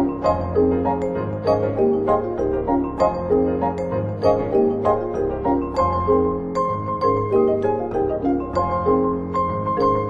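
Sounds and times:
marimbas vibraphone and pianos: 0:00.0 - 0:10.0.

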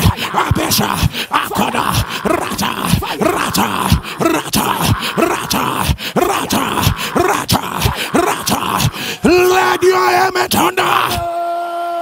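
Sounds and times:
man crying out wordlessly: 0:00.0 - 0:12.0.

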